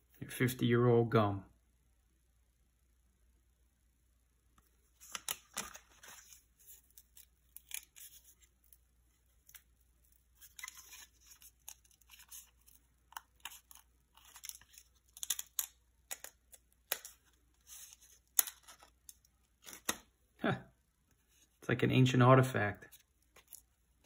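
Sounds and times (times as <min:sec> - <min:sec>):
paper and cardboard crackling tearing: 0:05.0 - 0:08.8, 0:10.4 - 0:16.3.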